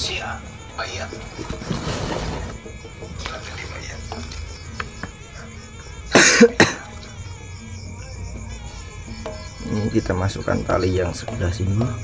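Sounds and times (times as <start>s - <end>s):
man coughing: 6.1s - 6.9s.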